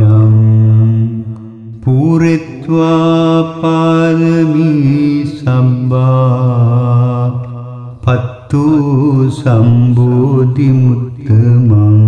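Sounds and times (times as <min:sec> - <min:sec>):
person chanting in long notes: 0:00.0 - 0:12.0.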